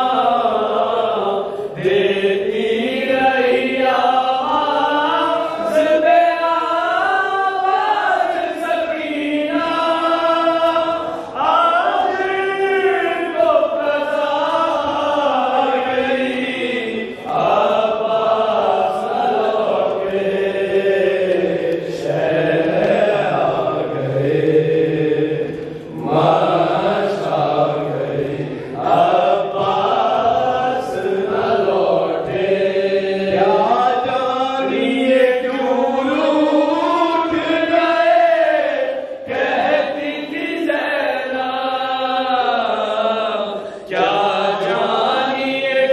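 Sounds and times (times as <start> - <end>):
group of men chanting a lament: 0.0 - 45.9.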